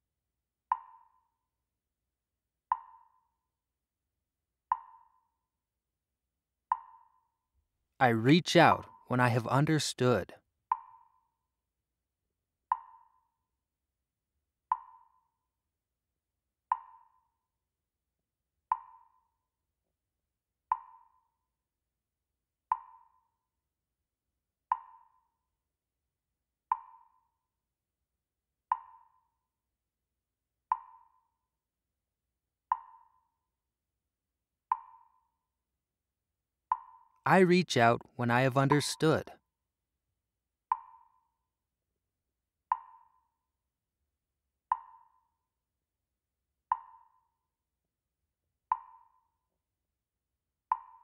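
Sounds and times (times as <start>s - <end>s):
percussive ticks: 0.7s - 1.3s, 2.7s - 3.2s, 4.7s - 5.2s, 6.7s - 7.2s, 12.7s - 13.2s, 14.7s - 15.3s, 16.7s - 17.2s, 18.7s - 19.2s, 20.7s - 21.2s, 22.7s - 23.2s, 24.7s - 25.2s, 26.7s - 27.3s, 28.7s - 29.2s, 30.7s - 31.3s, 32.7s - 33.2s, 34.7s - 35.3s, 36.7s - 39.3s, 40.7s - 41.2s, 42.7s - 43.2s, 44.7s - 45.2s, 46.7s - 47.2s, 48.7s - 49.2s, 50.7s - 51.0s.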